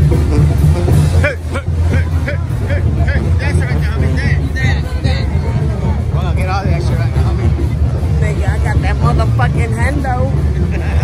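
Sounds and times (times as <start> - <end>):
bass-heavy music from sound system: 0.0 - 11.0
crowd chatter: 0.0 - 11.0.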